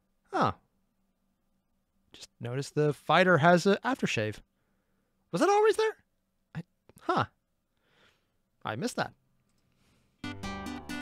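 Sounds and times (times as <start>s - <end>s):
man saying huh: 0.3s - 0.6s, 6.6s - 7.4s.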